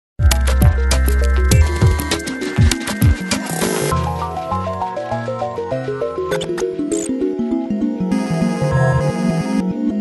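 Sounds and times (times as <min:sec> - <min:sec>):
upbeat intro music: 0:00.2 - 0:10.0.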